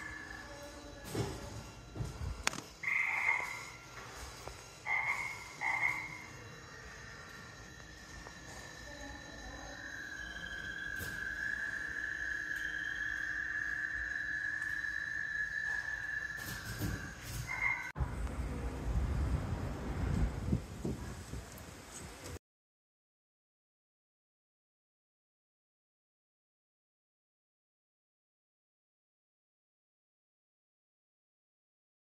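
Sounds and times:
frog croaking chirps: 0:00.0 - 0:01.0, 0:02.4 - 0:18.0
frog high trill: 0:02.8 - 0:03.9, 0:04.8 - 0:17.9.

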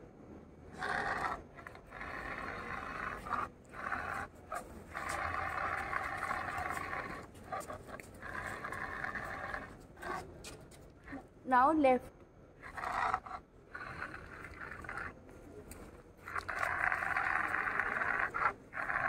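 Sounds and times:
small motors whirring: 0:01.0 - 0:11.2, 0:12.6 - 0:19.0.

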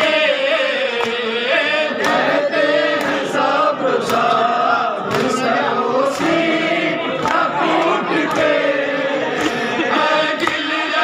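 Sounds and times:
crowd of men chanting: 0:00.0 - 0:11.0.

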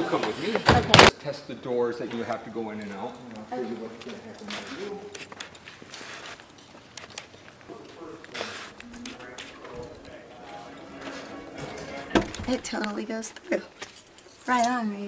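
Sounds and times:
hard-soled footsteps clicking: 0:02.1 - 0:14.4
faint voices talking: 0:07.2 - 0:13.8.

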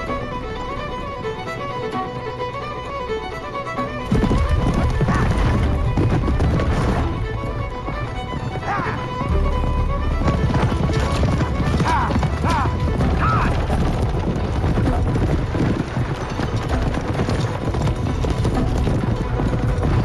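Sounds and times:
chariots rumbling: 0:00.0 - 0:20.0
film music: 0:00.0 - 0:20.0
galloping hoofbeats on dirt: 0:03.5 - 0:20.0.

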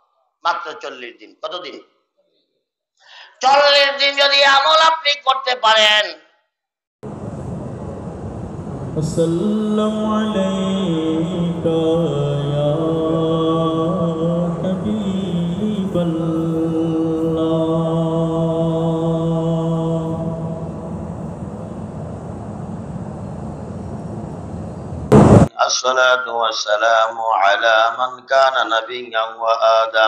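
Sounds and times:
devotional chant with held notes: 0:09.0 - 0:22.0, 0:25.6 - 0:30.0.

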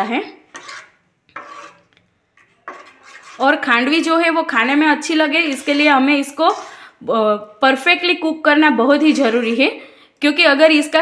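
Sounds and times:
spatula scraping a pan: 0:00.4 - 0:07.0, 0:08.9 - 0:09.8.

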